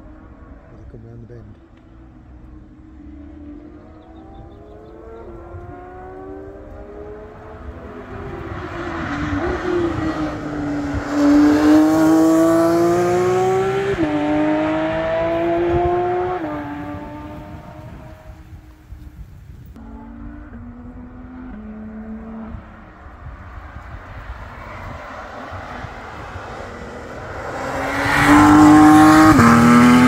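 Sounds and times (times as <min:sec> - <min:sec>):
race car engine accelerating past: 0:02.5 - 0:18.8, 0:19.8 - 0:30.0.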